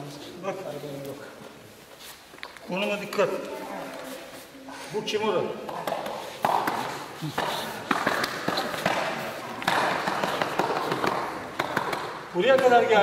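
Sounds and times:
knocks and thumps on mats: 5.7s - 12.8s.

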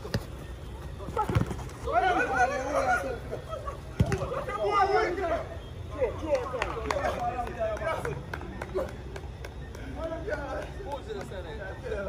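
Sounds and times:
men calling out: 1.0s - 9.1s.

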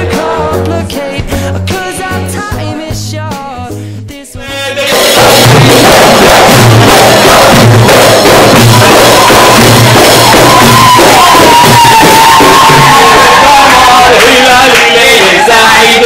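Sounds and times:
frame drums and hand drums: 4.8s - 14.3s.

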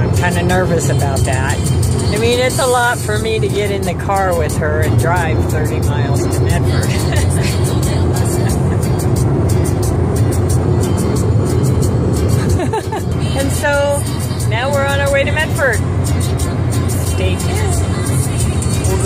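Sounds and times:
car road and engine rumble: 0.0s - 19.0s
music playing: 0.0s - 19.0s.

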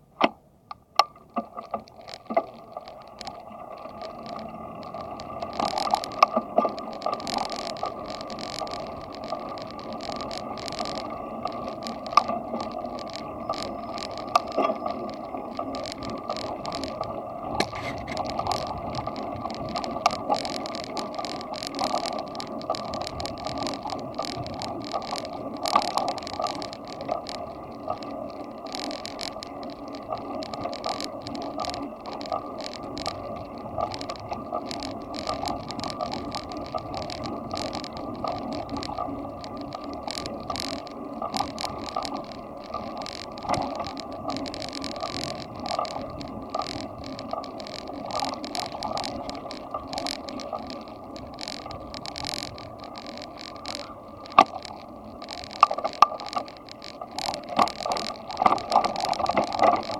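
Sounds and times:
bicycle clicks and rattles: 0.2s - 59.9s
bicycle tyres rolling rumble: 0.8s - 59.9s.

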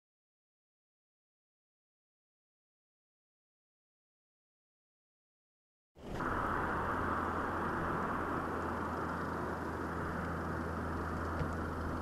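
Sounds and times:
low even engine hum: 6.0s - 12.0s.

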